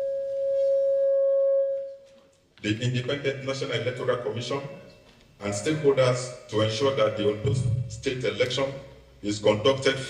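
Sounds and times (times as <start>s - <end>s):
microphone feedback ringing: 0.0s - 2.1s.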